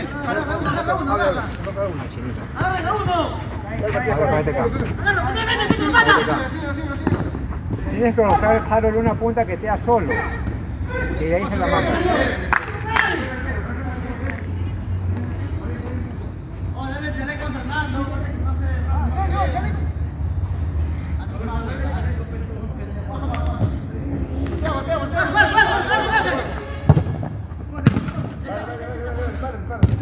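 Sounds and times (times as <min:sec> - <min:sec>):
players calling: 0:00.0 - 0:14.3, 0:23.0 - 0:30.0.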